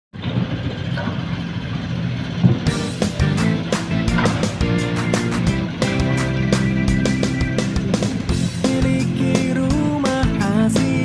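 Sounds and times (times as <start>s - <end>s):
excavator diesel engine droning: 0.2s - 11.0s.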